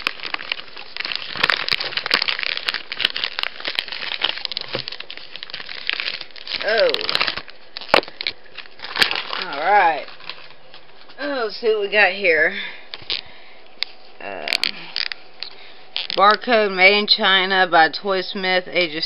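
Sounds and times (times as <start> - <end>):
plastic bag ripping and crinkling: 0.0 - 11.2, 13.9 - 16.6.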